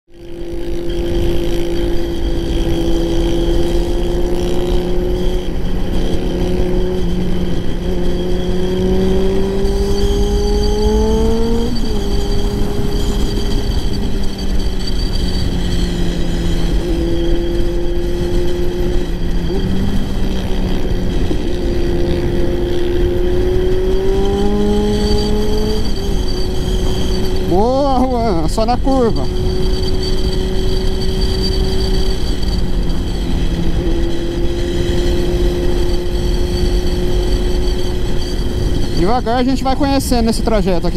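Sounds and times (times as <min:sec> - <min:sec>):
motorcycle engine cruising: 0:00.1 - 0:40.9
wind buffeting microphone: 0:00.5 - 0:40.9.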